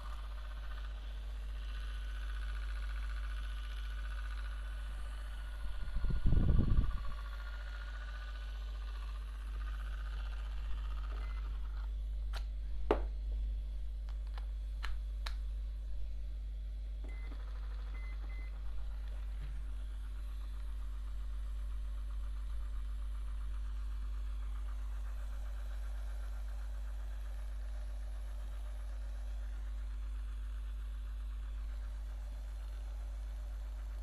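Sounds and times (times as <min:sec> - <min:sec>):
electric facial device buzzing: 0:00.0 - 0:11.9
constant low hum: 0:00.0 - 0:34.0.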